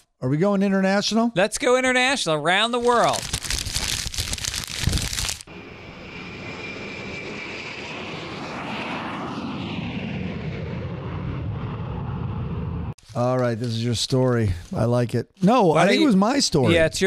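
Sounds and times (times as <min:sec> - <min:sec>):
crinkling handling noise: 0:02.8 - 0:05.4
jet airliner rushing noise: 0:04.8 - 0:13.0.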